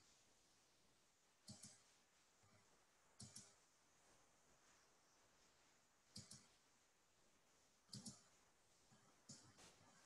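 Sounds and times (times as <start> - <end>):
faint mouse clicks: 1.4 - 1.9, 3.1 - 3.6, 6.1 - 6.6, 7.8 - 8.4, 9.0 - 9.8.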